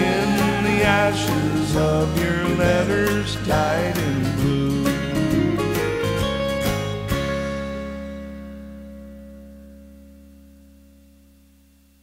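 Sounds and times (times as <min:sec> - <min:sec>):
guitar chord ringing out: 0:00.0 - 0:12.0
guitar strumming: 0:00.0 - 0:12.0.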